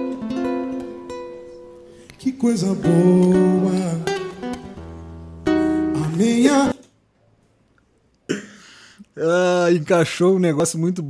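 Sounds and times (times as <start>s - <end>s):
acoustic guitar chords: 0.0s - 6.9s
man singing: 2.1s - 4.6s, 5.9s - 6.9s.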